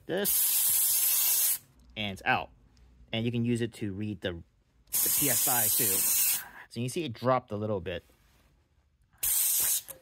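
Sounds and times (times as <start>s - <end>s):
air hissing from tire valve: 0.3s - 1.6s, 4.9s - 6.4s, 9.2s - 9.9s.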